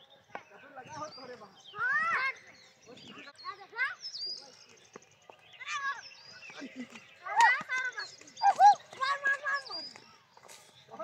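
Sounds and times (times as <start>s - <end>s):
boys shouting and calling out: 0.8s - 4.6s, 5.6s - 10.2s.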